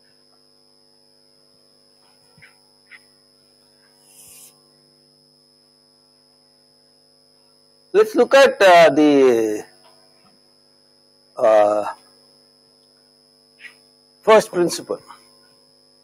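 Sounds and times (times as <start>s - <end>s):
electrical mains hum: 0.0s - 16.0s
chalk scratching on blackboard: 4.0s - 4.6s.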